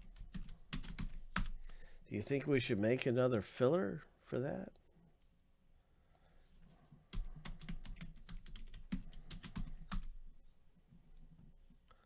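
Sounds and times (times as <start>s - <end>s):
computer keyboard typing: 0.0s - 1.7s, 7.1s - 10.2s.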